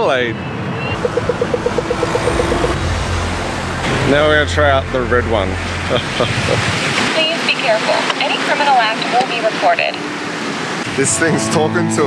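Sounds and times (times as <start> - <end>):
rapid electronic beeping: 0.4 - 2.8
steady electronic tone: 0.7 - 6.5.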